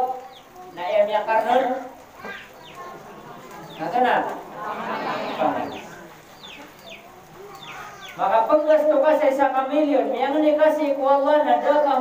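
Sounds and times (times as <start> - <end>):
bird chirping: 0.0 - 8.8.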